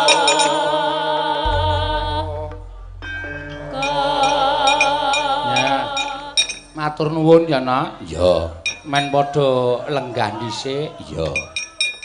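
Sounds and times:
person singing with vibrato: 0.0 - 7.4
gamelan accompaniment: 1.4 - 7.8
metallic plates clinking: 8.6 - 9.3, 11.4 - 12.0.

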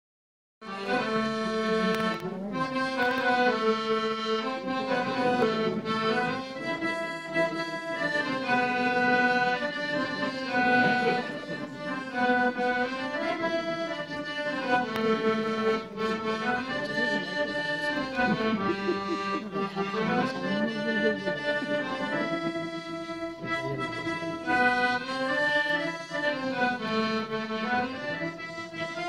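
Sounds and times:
solo accordion tune: 0.6 - 29.0.

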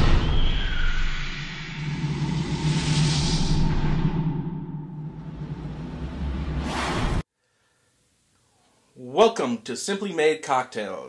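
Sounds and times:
whoosh: 0.0 - 7.3.

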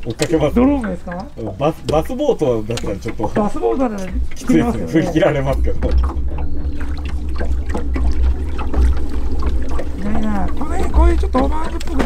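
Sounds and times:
water sloshing against boat hull: 0.0 - 12.0
low rumble: 3.8 - 12.0.

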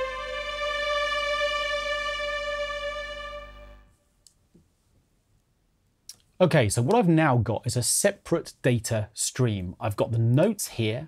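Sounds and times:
violin holding long note: 0.0 - 3.9.

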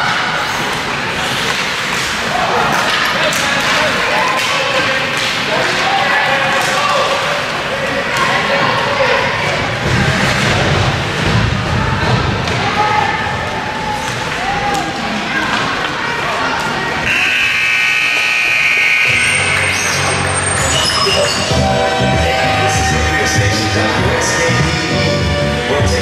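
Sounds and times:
puck and sticks hitting boards: 1.2 - 7.4
spectators calling out: 16.9 - 26.0
steady music: 19.1 - 26.0.

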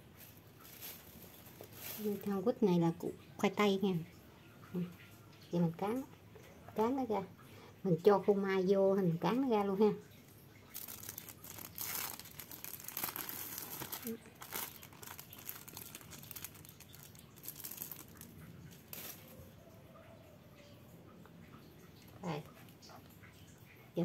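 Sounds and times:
plastic film crinkling: 0.2 - 2.5, 10.7 - 19.4.

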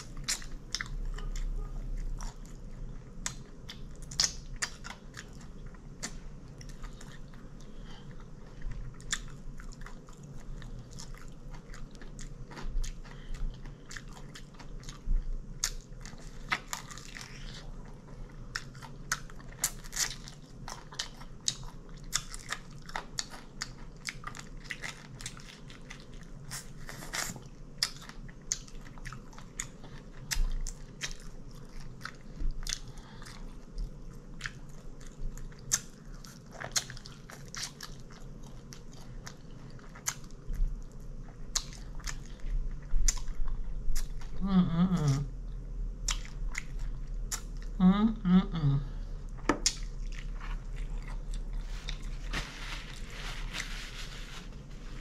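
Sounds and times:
person chewing crunchy chicken: 0.0 - 44.4, 46.0 - 47.8, 49.2 - 53.7.

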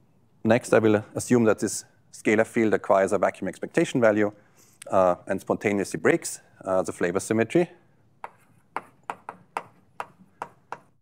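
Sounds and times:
chalk tapping on blackboard: 8.2 - 11.0.

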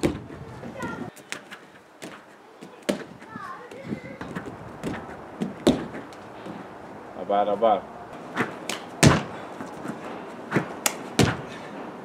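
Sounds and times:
thuds of landing on air track: 0.0 - 6.6, 8.3 - 11.8.

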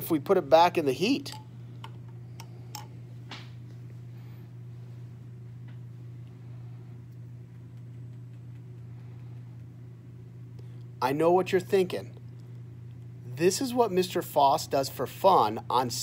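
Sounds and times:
steady low hum: 0.0 - 16.0.

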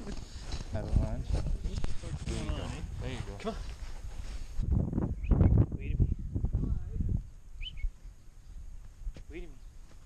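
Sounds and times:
wind rumble on microphone: 0.6 - 9.3
bird chirp: 5.1 - 5.6, 7.5 - 8.7.

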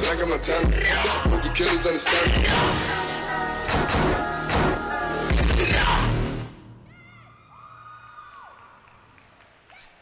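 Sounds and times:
hip-hop dance music: 0.0 - 6.7
audience whooping and cheering: 6.9 - 10.0.

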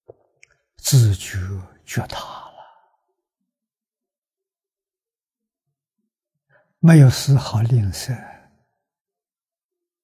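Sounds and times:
man speaking: 0.8 - 2.6, 6.8 - 8.4.

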